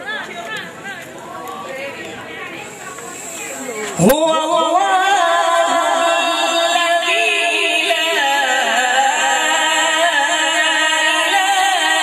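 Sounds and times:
murmuring audience voices: 0.0s - 12.0s
sound system hiss: 2.4s - 12.0s.

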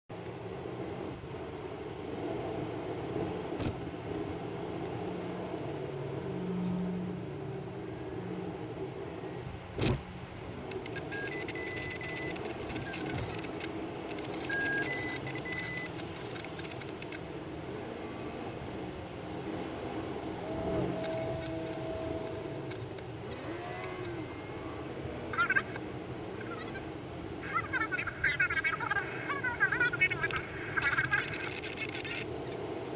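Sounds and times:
car road and engine noise: 0.1s - 32.9s
high-pitched sped-up voices: 25.2s - 32.6s.

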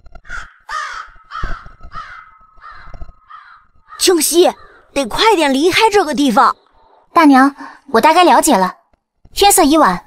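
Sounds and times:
crows cawing: 0.2s - 5.0s.

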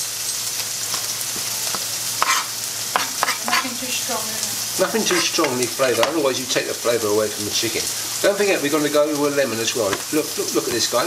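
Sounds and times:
chicken sizzling in a pan: 0.0s - 11.0s
knife chopping on plastic board: 0.9s - 3.7s.

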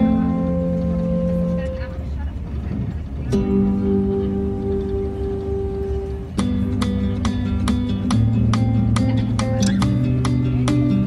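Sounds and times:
acoustic guitar chord: 0.0s - 11.0s
steady low rumble: 0.0s - 11.0s.

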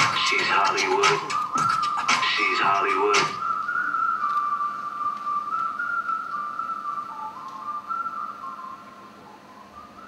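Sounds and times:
whistled pop melody: 0.0s - 10.0s.

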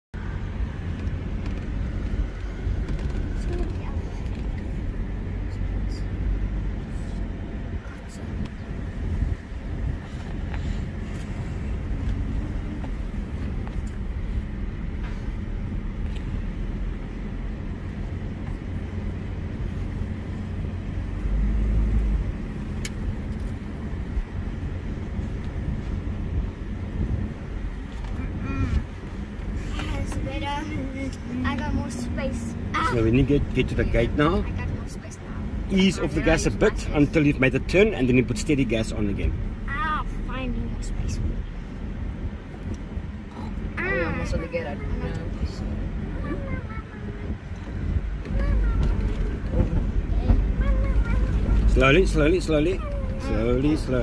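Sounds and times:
engine and tyre rumble: 0.0s - 54.0s.

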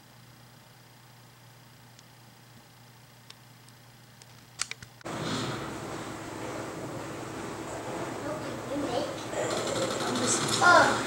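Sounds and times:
fast faint rattle: 6.4s - 11.0s.

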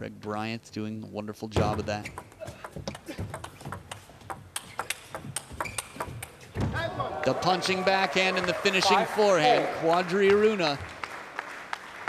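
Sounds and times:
table tennis ball clicking: 2.1s - 6.4s.

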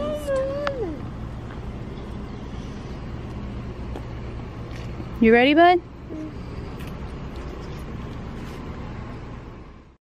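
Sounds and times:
low rumble of road traffic: 0.0s - 10.0s.

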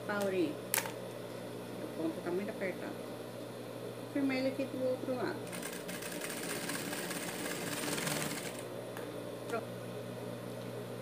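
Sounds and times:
steady low hum: 0.0s - 11.0s
sewing machine stitching: 5.5s - 8.6s.

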